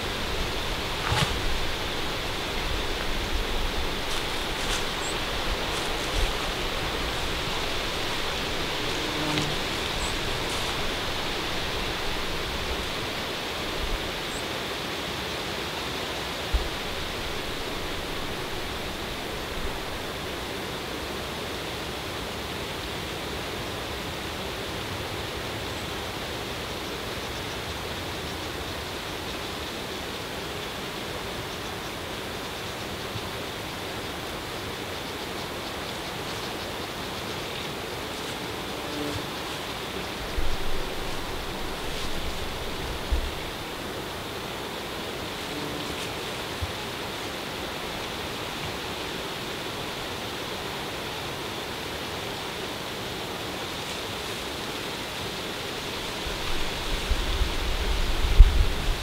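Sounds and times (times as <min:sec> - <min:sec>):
rushing hiss outdoors: 0:00.0 - 0:59.0.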